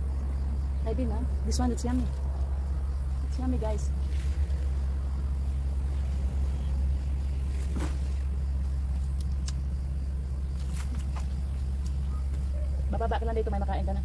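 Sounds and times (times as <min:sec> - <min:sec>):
steady low rumble: 0:00.0 - 0:14.0
leaves rustling when handled: 0:10.5 - 0:12.6.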